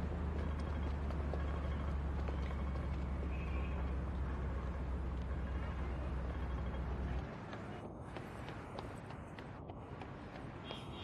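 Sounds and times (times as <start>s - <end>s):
car engine low rumble: 0.0s - 10.6s.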